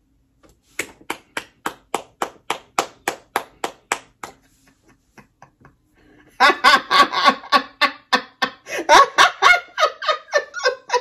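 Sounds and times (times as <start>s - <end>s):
person clapping hands: 0.7s - 4.6s.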